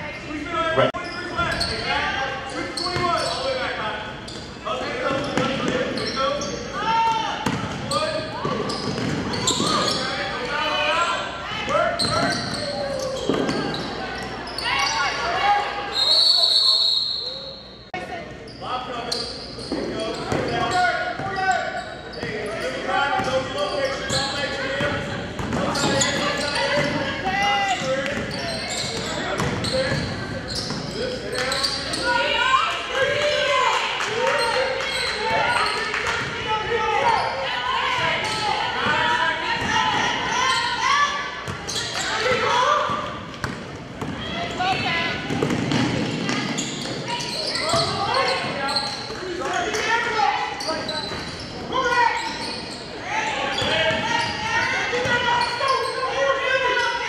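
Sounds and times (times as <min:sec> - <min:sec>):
voices of players: 0:00.0 - 0:57.0.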